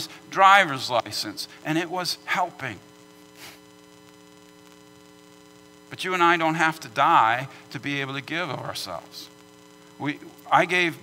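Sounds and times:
man speaking: 0.0s - 2.8s, 5.9s - 9.3s, 10.0s - 11.0s
electrical mains hum: 0.0s - 11.0s.

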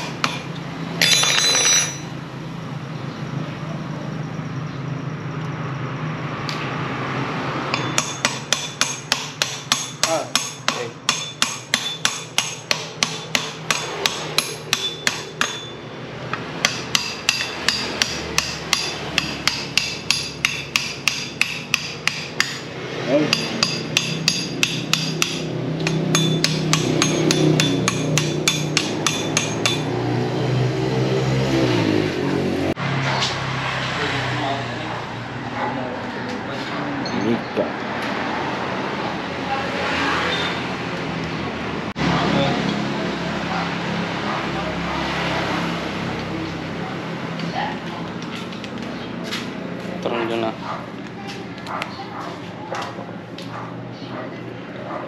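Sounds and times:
hammer striking metal: 0.0s - 2.1s, 7.7s - 30.1s.

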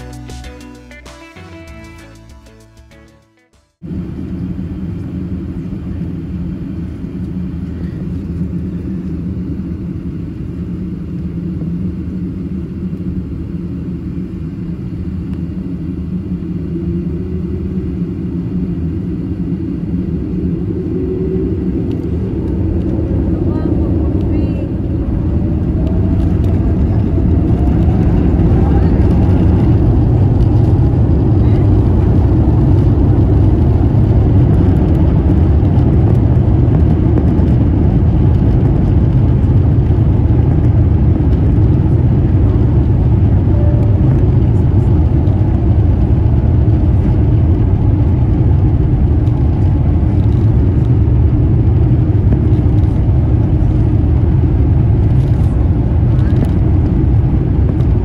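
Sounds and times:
jet engine rumble in cabin: 3.8s - 58.0s
jet engine whine rising: 3.8s - 58.0s.

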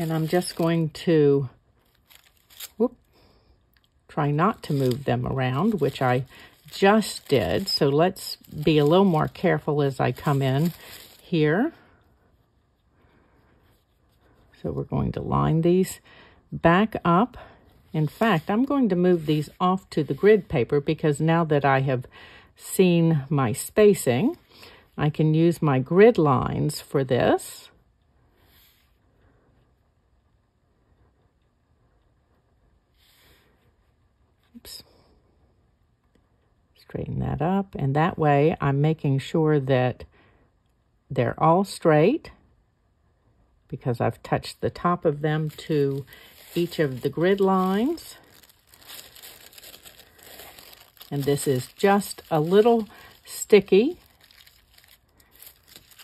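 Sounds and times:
plastic wrap crinkling: 0.0s - 11.9s, 16.6s - 21.2s, 44.1s - 56.0s.

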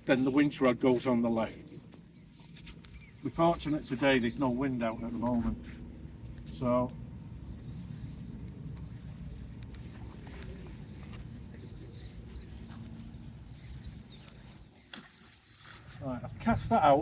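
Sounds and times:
low rumble: 2.2s - 14.5s.

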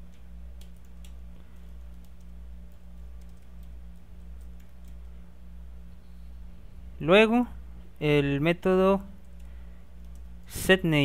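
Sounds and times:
steady low hum: 0.0s - 11.0s
typing on computer keyboard: 0.6s - 5.1s.

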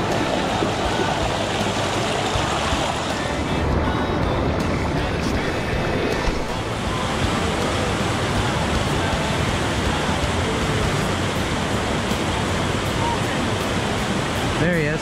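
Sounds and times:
stream pouring over rocks: 0.0s - 3.8s, 4.5s - 15.0s.

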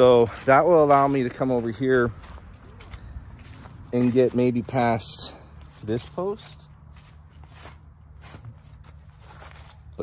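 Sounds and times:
footsteps on dry leaves: 0.0s - 10.0s.

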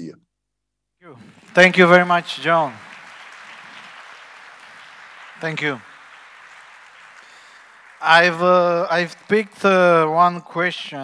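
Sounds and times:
faint audience applause: 1.1s - 11.0s.

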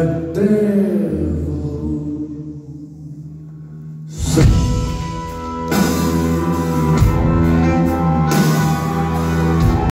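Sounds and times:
rock band holding low notes: 4.1s - 9.9s.

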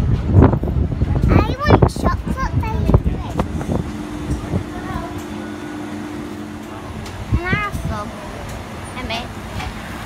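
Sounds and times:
street noise: 0.0s - 10.0s
two-tone mechanical hum: 0.6s - 10.0s.

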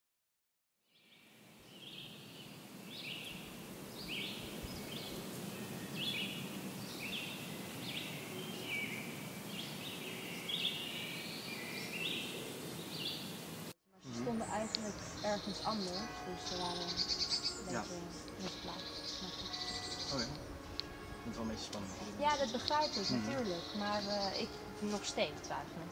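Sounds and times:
birds chirping: 1.0s - 25.9s
low background noise: 1.1s - 25.9s.

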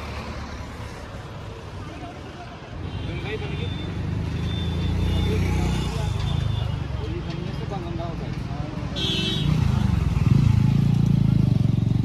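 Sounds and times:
road vehicle rumbling: 0.0s - 12.0s.

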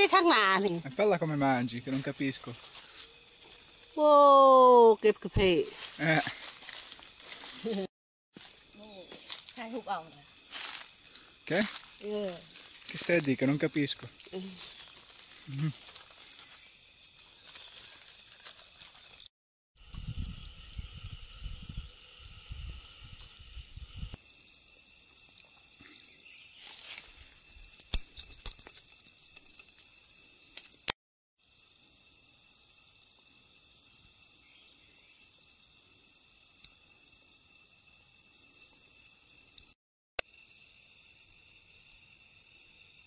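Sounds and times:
insects buzzing: 0.0s - 43.0s.

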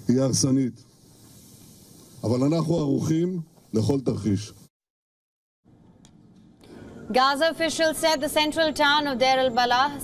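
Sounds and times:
faint background noise: 5.7s - 10.0s.

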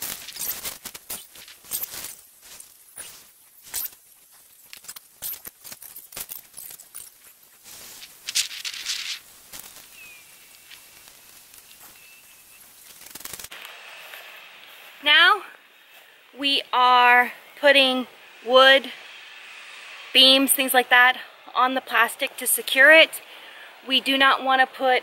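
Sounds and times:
plastic sheeting crackling: 0.0s - 13.6s
person speaking: 15.0s - 15.6s, 16.4s - 18.9s, 20.2s - 23.2s, 23.8s - 25.0s.

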